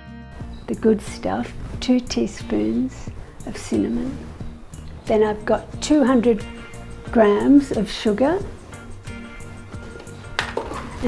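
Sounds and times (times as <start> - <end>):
soft background music: 0.0 - 11.0
crockery knock: 10.4 - 10.8.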